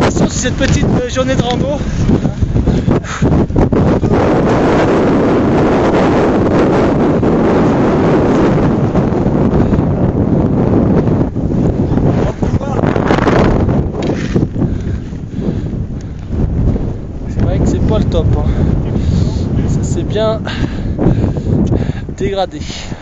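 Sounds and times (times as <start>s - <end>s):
wind on microphone: 0.0s - 23.0s.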